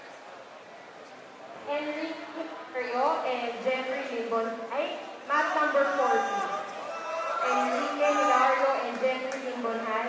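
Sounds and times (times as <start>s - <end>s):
people calling out and talking: 1.4s - 10.0s
coaches shouting: 5.3s - 9.1s.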